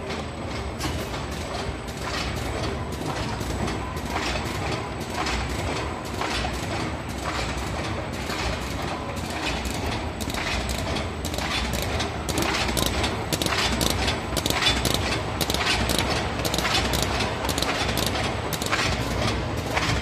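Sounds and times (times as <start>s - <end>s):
machine clicking and knocking: 0.0s - 20.0s.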